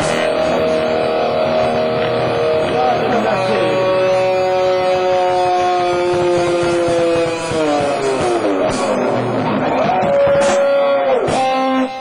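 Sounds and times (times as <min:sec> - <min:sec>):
distorted guitar note sliding down: 0:00.0 - 0:12.0
drum beats: 0:00.0 - 0:12.0.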